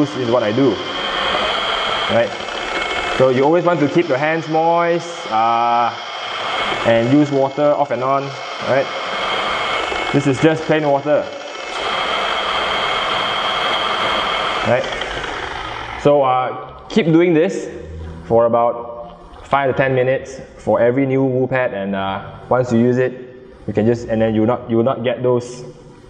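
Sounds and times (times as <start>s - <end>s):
rotary polisher whining: 0.0s - 16.9s.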